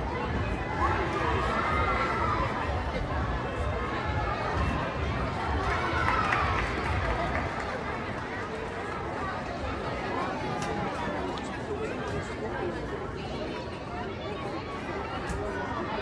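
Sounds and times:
crowd chattering: 0:00.0 - 0:16.0.

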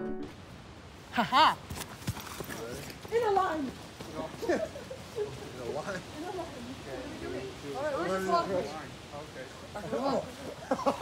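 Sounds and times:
person calling out exclamation: 0:01.1 - 0:01.6
footsteps on dirt trail: 0:01.6 - 0:04.5.

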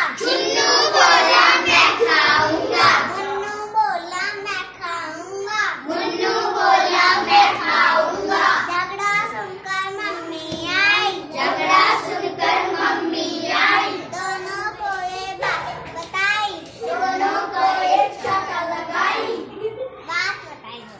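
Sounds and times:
boy singing a rhyme: 0:00.0 - 0:19.4.

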